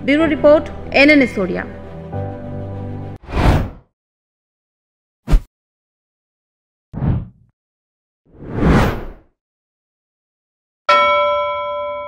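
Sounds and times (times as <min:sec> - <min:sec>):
bell-like ding: 0:10.9 - 0:12.0.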